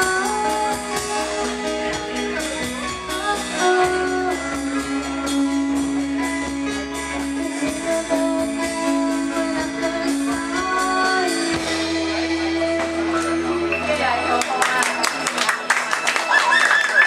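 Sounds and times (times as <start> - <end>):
live band playing: 0.0 - 17.0.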